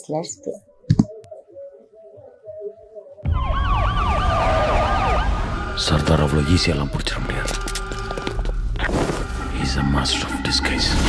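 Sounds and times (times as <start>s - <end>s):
wailing siren: 2.2s - 7.0s.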